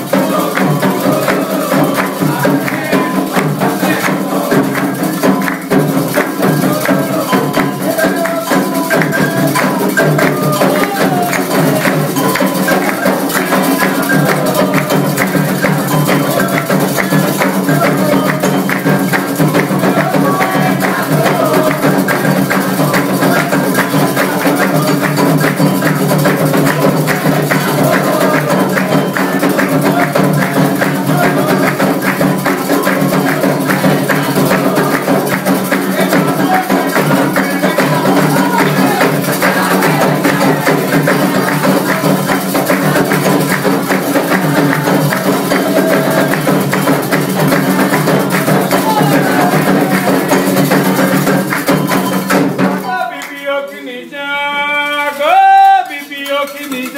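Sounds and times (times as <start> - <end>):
struck bell: 0.0 - 52.8
hand drums playing a steady rhythm: 0.0 - 53.0
voices singing: 0.0 - 56.9.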